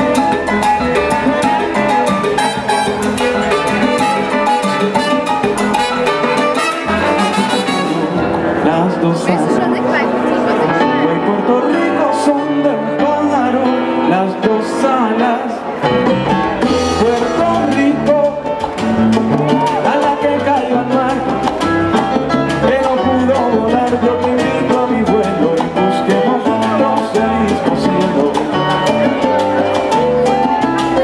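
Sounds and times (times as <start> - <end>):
live latin dance band: 0.0 - 31.0.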